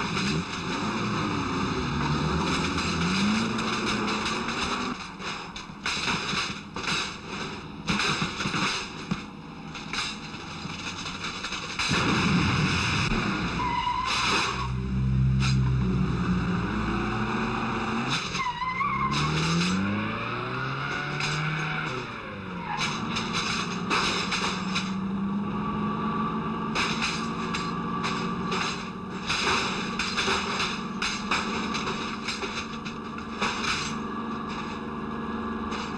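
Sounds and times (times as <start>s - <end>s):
vehicle engines revving: 0.0s - 35.9s
crashes and knocks: 2.3s - 15.8s, 19.0s - 22.1s, 22.8s - 25.1s, 26.7s - 34.9s
tyres squealing: 13.6s - 15.9s, 18.1s - 19.8s.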